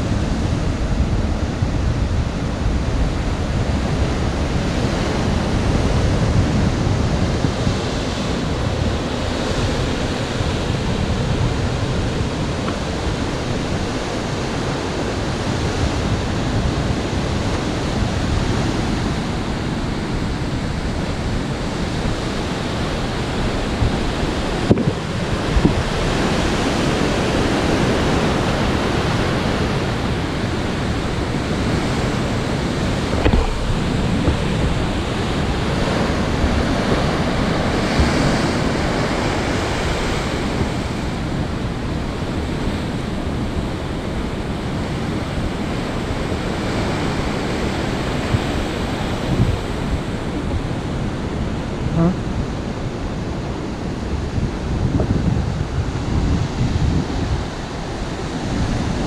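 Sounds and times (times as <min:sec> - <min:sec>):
ocean surf breaking over rocks: 0:00.0 - 0:59.0
wind on microphone: 0:00.0 - 0:59.0.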